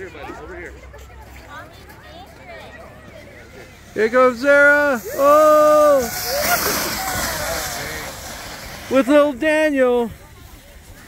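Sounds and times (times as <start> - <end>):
faint voices: 0.0 - 11.0
plastic sled scraping over snow: 4.0 - 11.0.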